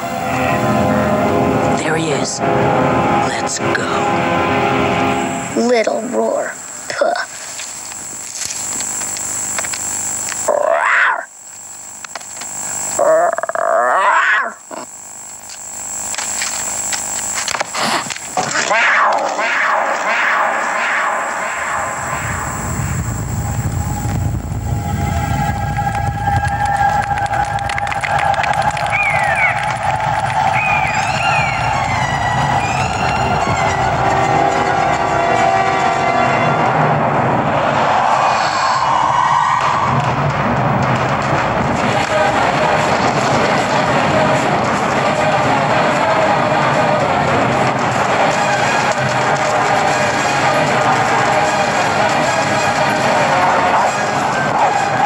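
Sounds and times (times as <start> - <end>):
film score: 0.0 - 7.6, 17.8 - 55.0
lion cub roaring: 10.5 - 11.3, 13.0 - 14.9.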